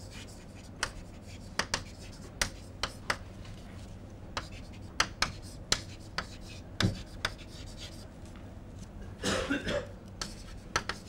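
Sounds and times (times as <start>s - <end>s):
chalk tapping on chalkboard: 0.0s - 3.2s, 4.4s - 8.0s, 10.2s - 11.0s.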